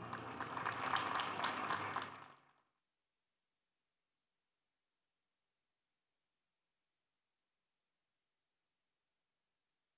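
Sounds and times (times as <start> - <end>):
audience applauding: 0.0 - 2.6.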